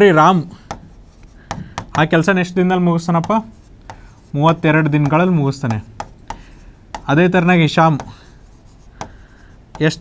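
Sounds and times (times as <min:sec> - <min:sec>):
marker scratching on board: 0:00.6 - 0:10.0
marker light tap: 0:05.0 - 0:07.1, 0:09.0 - 0:10.0.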